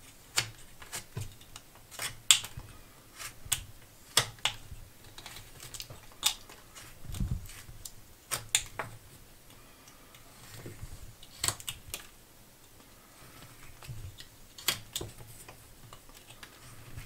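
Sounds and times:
knife scraping wood: 1.9 - 2.5, 3.1 - 8.9
wood chips snapping: 3.2 - 8.9, 11.2 - 12.1.

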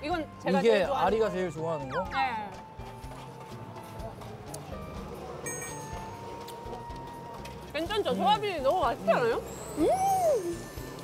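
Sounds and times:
soft background music: 0.0 - 11.0
falling whistle sound effect: 9.7 - 10.9.

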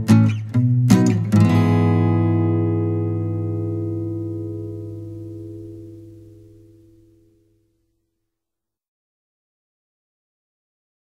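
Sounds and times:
strummed guitar chord: 0.0 - 7.6.

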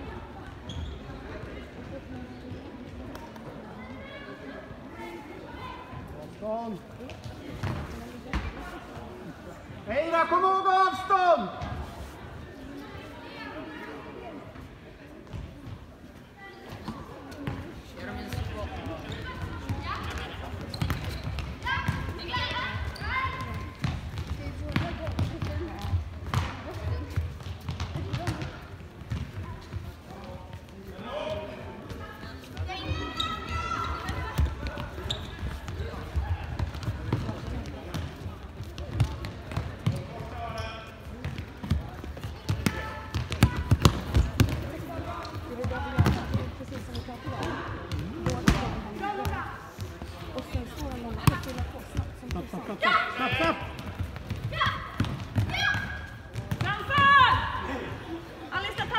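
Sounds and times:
ball bouncing on hard floor: 42.5 - 44.7
players shouting in a hall: 54.5 - 58.9.

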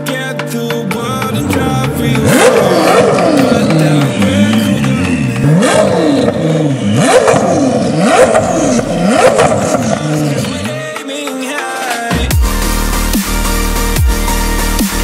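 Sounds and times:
car engine revving: 0.7 - 11.0.

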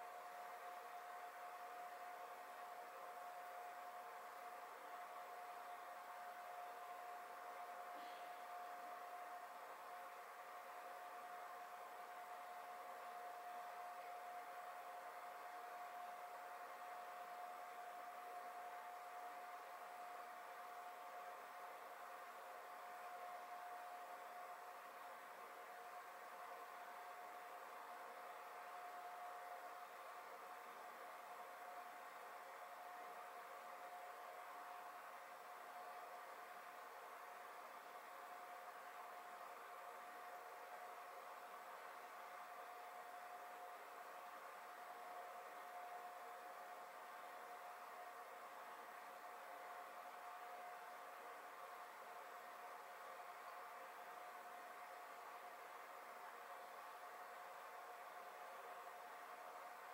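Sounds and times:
thin steady tone: 0.0 - 59.9.

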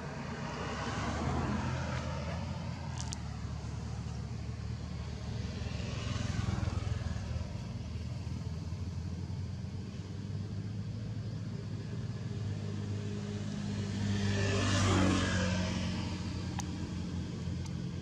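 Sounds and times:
vehicle passing: 0.0 - 10.6, 11.3 - 18.0
low motor hum: 0.0 - 18.0.

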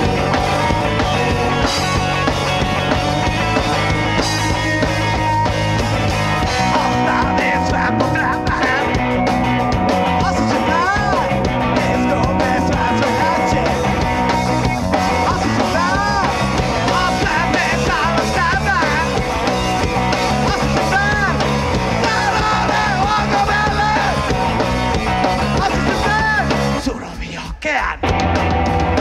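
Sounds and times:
bass guitar: 0.0 - 29.0
drums: 0.0 - 29.0
electric guitars: 0.0 - 29.0
person singing: 6.5 - 9.0, 10.1 - 14.0, 15.1 - 19.1, 22.0 - 24.4, 25.4 - 28.1.

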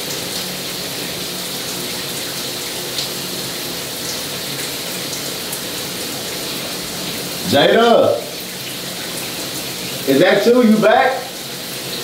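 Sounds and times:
shower running: 0.0 - 12.0.

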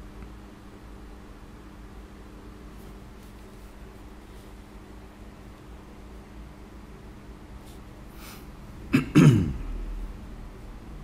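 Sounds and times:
man coughing: 8.9 - 9.7.

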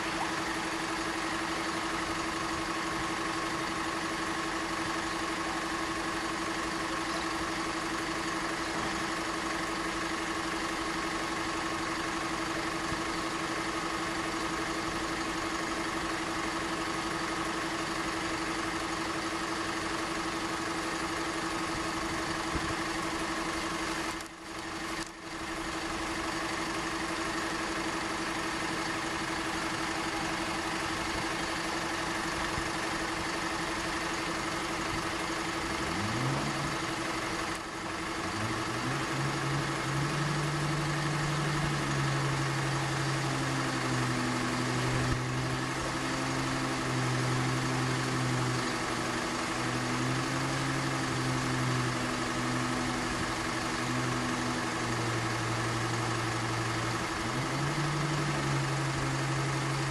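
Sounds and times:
constant droning tone: 0.0 - 59.9
vehicle engines idling: 0.0 - 59.9.

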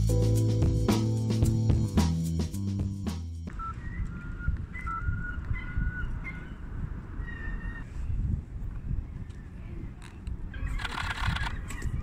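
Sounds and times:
intro music: 0.0 - 3.5.

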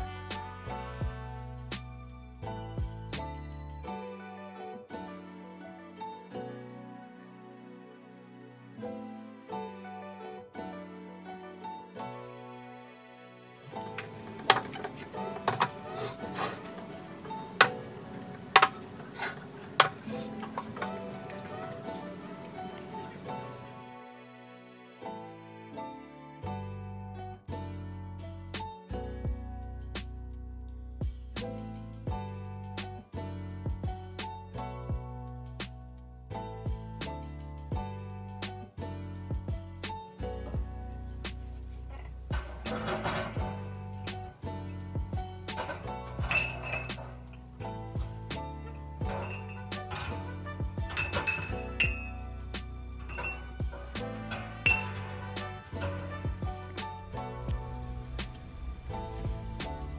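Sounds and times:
background music with a beat: 0.0 - 4.0, 28.2 - 59.9
glass jars clinking: 13.8 - 23.3, 45.6 - 47.4, 48.7 - 52.4, 53.0 - 56.3.

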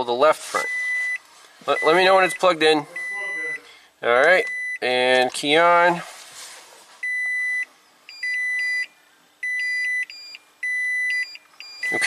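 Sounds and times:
dashboard warning buzzer beeping: 0.6 - 3.7, 4.4 - 4.9, 7.0 - 12.0.

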